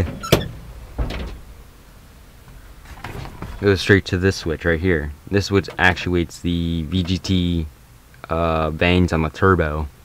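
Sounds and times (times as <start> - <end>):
car door metallic clack: 0.0 - 1.6.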